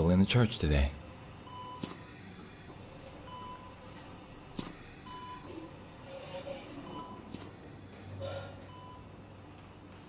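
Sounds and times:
low steady hum: 0.0s - 10.0s
patient monitor beeps: 1.4s - 2.0s, 3.1s - 4.0s, 5.0s - 5.7s, 6.8s - 7.5s, 8.2s - 9.2s.

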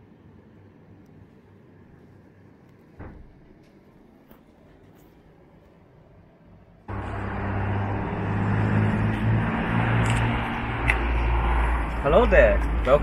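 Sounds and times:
car road noise: 6.9s - 13.0s
low engine hum: 6.9s - 13.0s.

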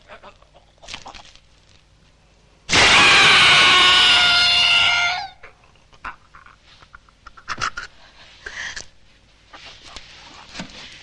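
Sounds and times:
woman screaming: 2.7s - 5.4s
breathing: 8.0s - 8.9s.

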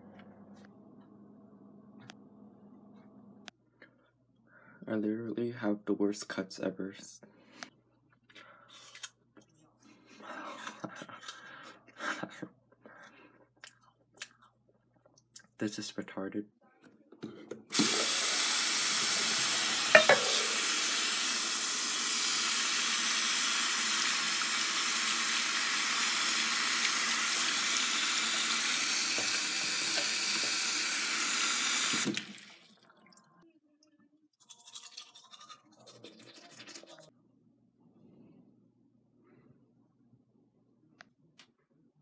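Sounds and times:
faucet water pouring into basin: 17.7s - 33.3s, 34.4s - 37.1s
water splashing into metal cup: 19.9s - 20.9s, 34.4s - 37.1s.

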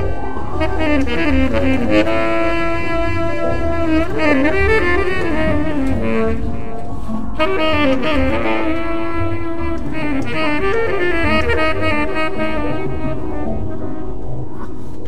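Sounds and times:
low accompaniment: 0.0s - 15.0s
tenor saxophone improvising: 0.0s - 15.0s.

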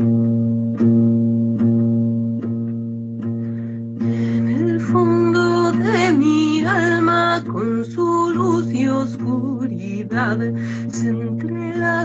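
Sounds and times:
acoustic guitar: 0.0s - 12.0s
woman singing a chant: 4.4s - 12.0s.

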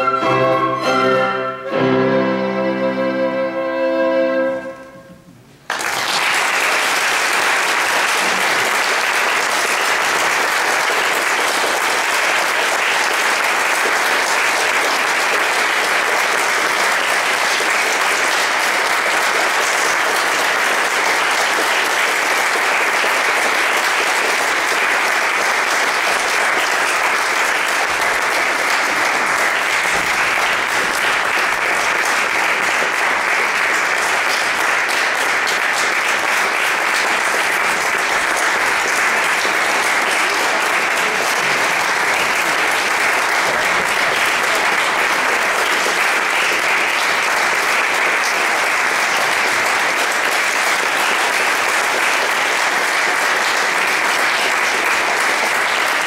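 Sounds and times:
audience applauding in a church: 5.6s - 56.0s.

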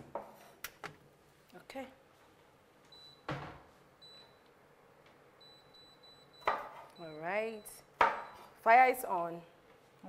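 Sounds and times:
knife chopping on wooden board: 6.4s - 6.8s.

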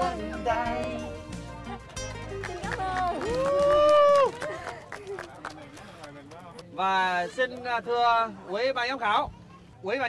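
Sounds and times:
person cheering: 3.2s - 4.4s.

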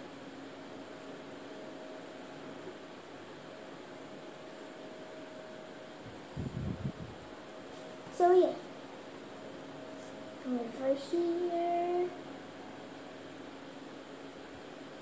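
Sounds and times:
room hum and hiss: 0.0s - 15.0s.

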